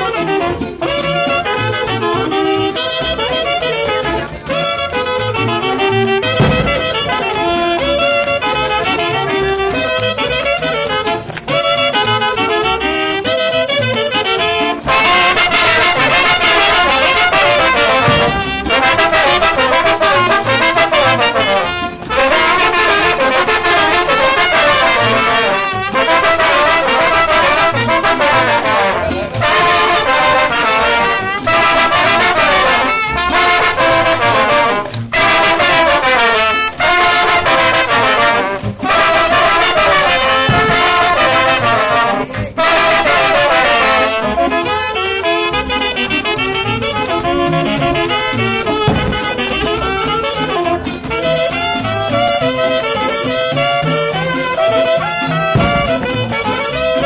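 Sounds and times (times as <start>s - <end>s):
wind band playing dance tune: 0.0s - 57.0s.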